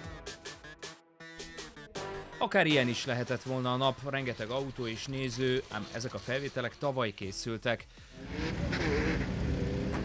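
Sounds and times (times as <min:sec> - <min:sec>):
car engine accelerating hard: 0:08.1 - 0:10.0.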